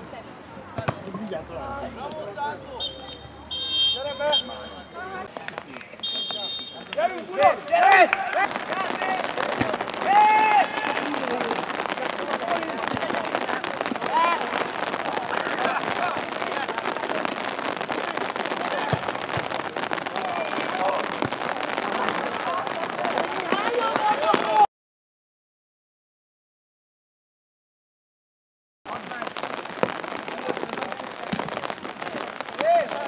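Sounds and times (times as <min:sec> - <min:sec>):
players shouting: 0:01.7 - 0:24.7
rain pattering: 0:04.2 - 0:24.7, 0:28.9 - 0:33.0.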